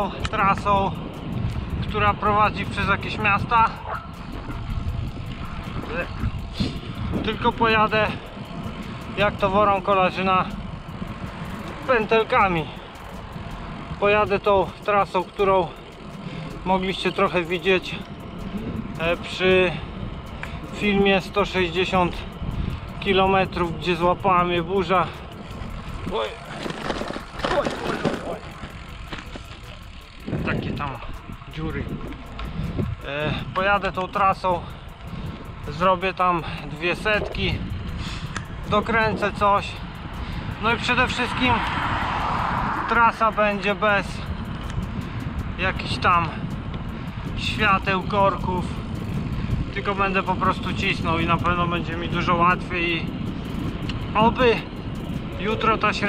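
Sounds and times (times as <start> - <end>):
bicycle road noise: 0.0 - 56.0
wind on microphone: 0.0 - 56.0
light clicks: 20.2 - 20.8.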